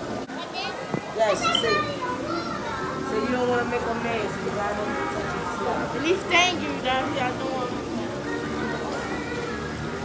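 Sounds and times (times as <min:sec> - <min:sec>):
children talking: 0:00.0 - 0:10.0.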